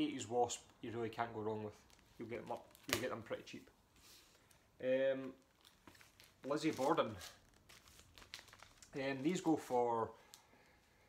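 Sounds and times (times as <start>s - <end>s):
plastic sleeves crinkling: 0.6s - 11.0s.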